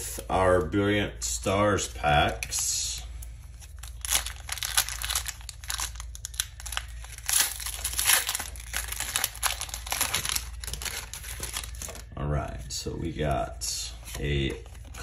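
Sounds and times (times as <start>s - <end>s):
foil wrapper tearing and crinkling: 3.6s - 12.0s.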